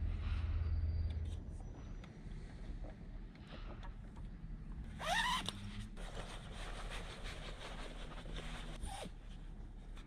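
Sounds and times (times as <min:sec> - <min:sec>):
zipper pulled: 0:04.9 - 0:06.0, 0:08.3 - 0:09.2.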